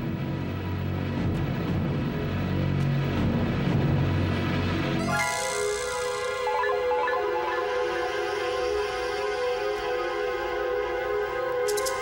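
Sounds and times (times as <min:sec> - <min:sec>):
low rumbling suspense drone: 0:00.0 - 0:11.7.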